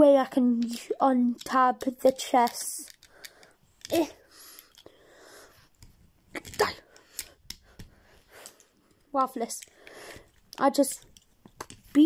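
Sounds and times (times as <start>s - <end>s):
plastic toy clicks and scrapes: 0.6s - 4.9s, 9.4s - 12.0s.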